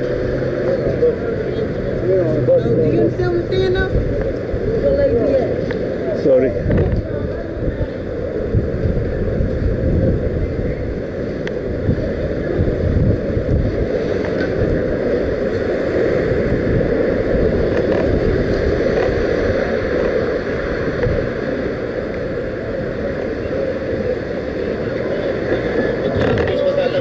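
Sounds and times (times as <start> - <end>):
continuous low rumble: 0.0 - 27.0
wind rushing on microphone: 0.0 - 27.0.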